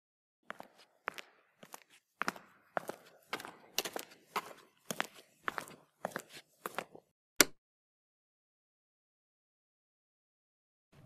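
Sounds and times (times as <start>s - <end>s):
footsteps walking: 0.5s - 7.1s.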